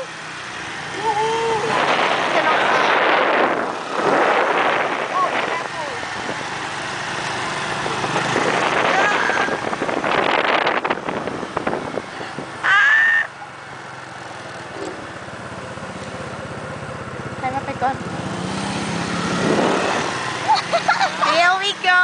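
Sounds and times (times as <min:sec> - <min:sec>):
motor scooters riding past: 0:00.0 - 0:10.9, 0:11.6 - 0:22.0.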